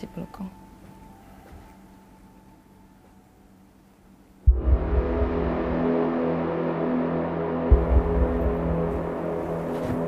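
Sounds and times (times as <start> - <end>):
sustained low chord: 4.4 - 10.0
deep bass rumble: 4.5 - 10.0.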